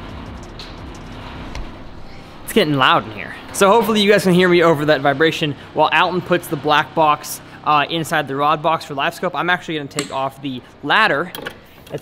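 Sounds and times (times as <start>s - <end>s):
shop machinery humming: 0.0s - 12.0s.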